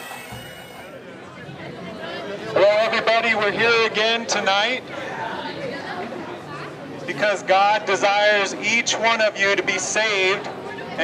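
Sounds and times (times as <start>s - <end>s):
street chatter: 0.0s - 11.0s.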